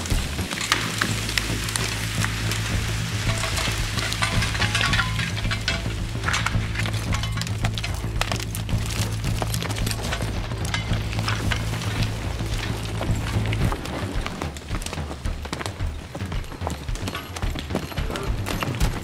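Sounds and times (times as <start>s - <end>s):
background music with low drone: 0.0s - 19.0s
log dragging over dirt: 0.0s - 19.0s.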